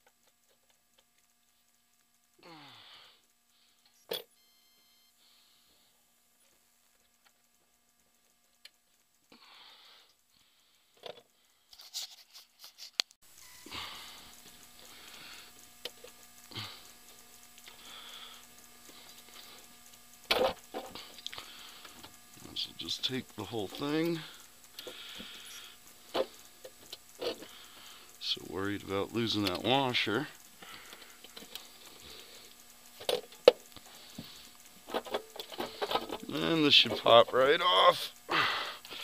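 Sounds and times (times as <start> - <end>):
hands rustling and handling parts: 11.0 - 13.2.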